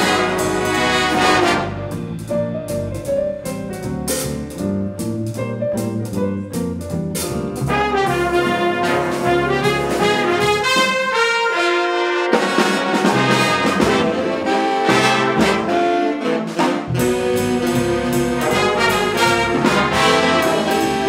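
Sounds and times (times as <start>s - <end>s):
brass section holding chords: 0.0s - 2.0s, 7.7s - 21.0s
jazz ensemble playing: 0.0s - 21.0s.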